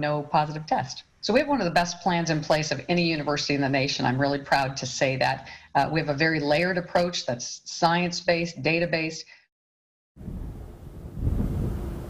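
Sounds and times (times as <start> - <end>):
wind rumble on microphone: 10.2 - 12.0.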